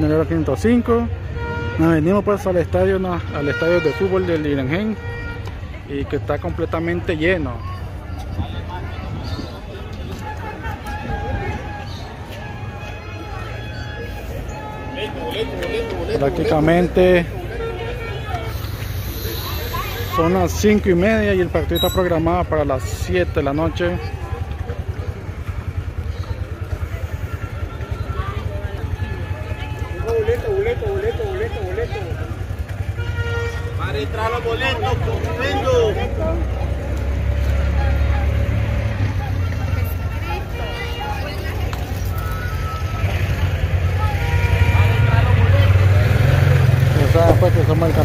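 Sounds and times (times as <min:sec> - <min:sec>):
crowd talking in street: 0:00.0 - 0:48.0
vehicle engine rumble: 0:04.2 - 0:48.0.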